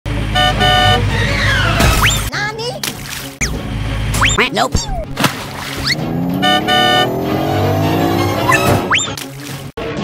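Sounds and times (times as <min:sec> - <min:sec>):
horn honking: 0:00.2 - 0:01.4, 0:06.0 - 0:08.9.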